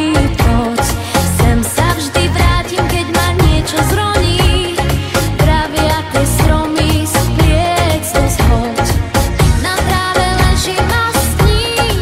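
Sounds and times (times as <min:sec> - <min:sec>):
song with heavy bass beat: 0:00.0 - 0:12.0.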